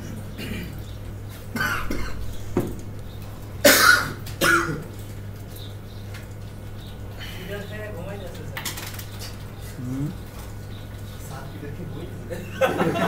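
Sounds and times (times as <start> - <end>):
steady low hum: 0.0 - 13.0
person coughing: 0.4 - 0.8, 1.5 - 2.2, 3.6 - 4.9.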